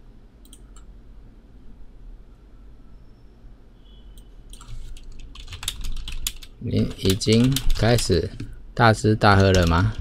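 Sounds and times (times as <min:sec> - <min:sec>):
low steady hum: 0:00.0 - 0:10.0
computer mouse clicks: 0:00.4 - 0:00.9, 0:04.2 - 0:08.5.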